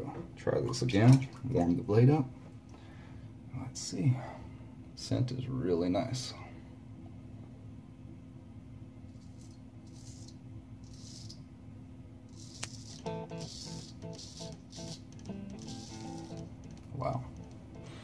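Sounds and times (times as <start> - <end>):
razor scraping stubble: 9.2 - 11.4, 12.3 - 17.9.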